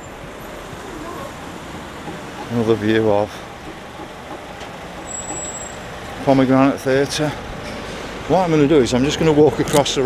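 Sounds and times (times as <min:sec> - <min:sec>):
cars passing: 0:00.0 - 0:10.0.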